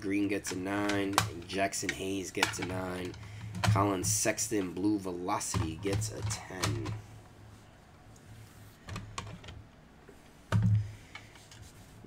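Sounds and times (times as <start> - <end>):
plastic slabs clicking together: 0.4 - 4.7.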